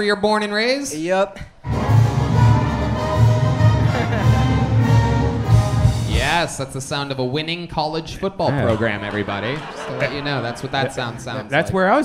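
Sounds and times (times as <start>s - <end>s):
live band playing fight song: 1.7s - 6.3s
drum beat: 1.7s - 6.6s.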